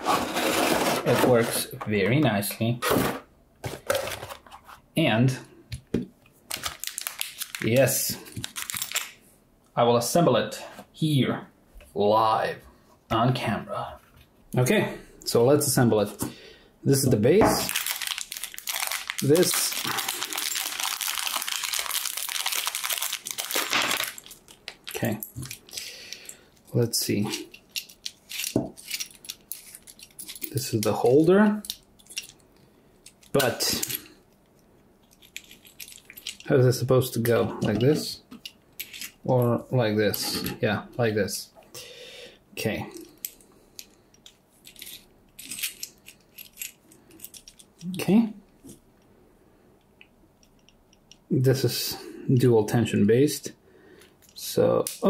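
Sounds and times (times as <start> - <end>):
metal scrape: 0.0 - 1.7
plastic bag crinkling: 6.5 - 9.2, 17.6 - 25.9
metal parts clicking and rattling: 17.7 - 31.0, 31.6 - 36.5, 37.6 - 39.2, 43.0 - 47.9.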